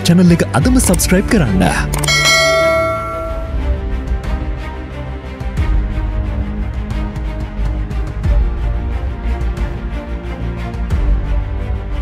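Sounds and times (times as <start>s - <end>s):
low steady music bed: 0.0s - 12.0s
bright bell chime: 2.0s - 3.8s.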